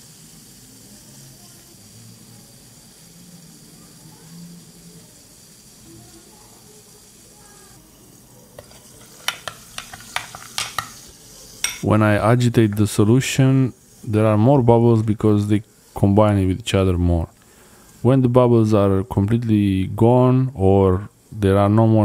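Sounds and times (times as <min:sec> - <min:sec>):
glass clicking on desk: 0:09.2 - 0:11.0, 0:11.6 - 0:11.9.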